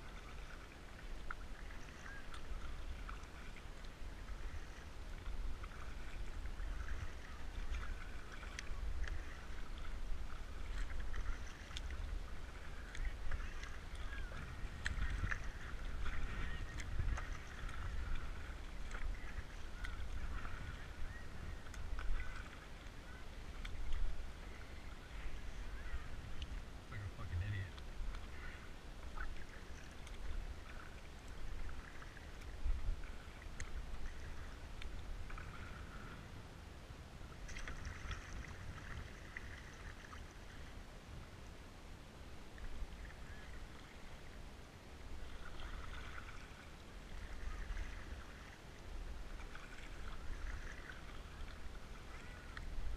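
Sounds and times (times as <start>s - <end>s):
low steady rumble: 0.0s - 52.9s
paddle splashing water: 0.0s - 52.9s.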